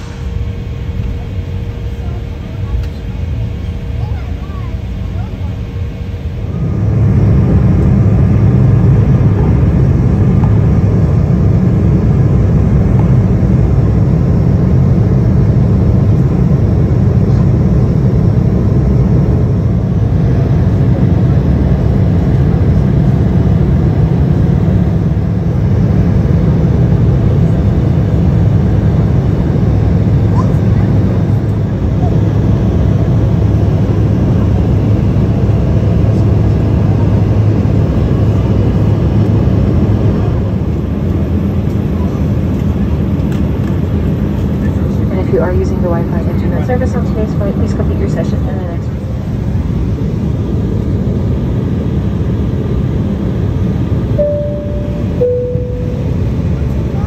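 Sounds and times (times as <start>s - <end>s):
rushing air: 0.0s - 0.7s
jet engines rumbling: 0.0s - 57.0s.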